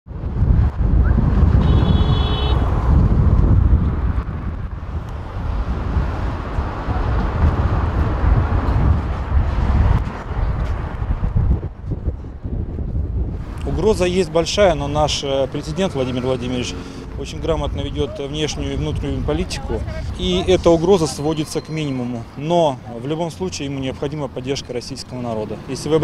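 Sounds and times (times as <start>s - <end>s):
wind buffeting microphone: 0.1s - 21.5s
cars driving past: 1.2s - 11.8s, 13.3s - 26.0s.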